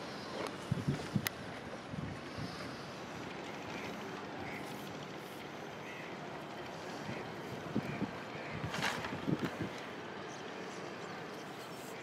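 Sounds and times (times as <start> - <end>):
wind noise on microphone: 0.6 - 2.7, 7.0 - 9.8.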